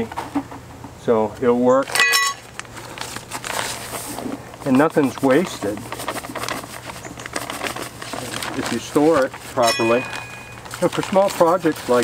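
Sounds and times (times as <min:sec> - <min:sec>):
bag of dry mix rustling: 0:01.8 - 0:12.0
steel trowel ringing: 0:01.9 - 0:02.4, 0:09.6 - 0:10.7.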